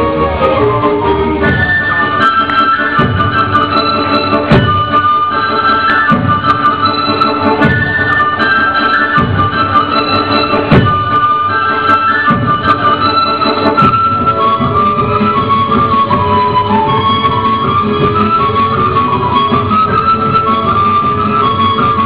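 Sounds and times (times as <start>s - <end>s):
lively folk dance music: 0.0s - 22.0s.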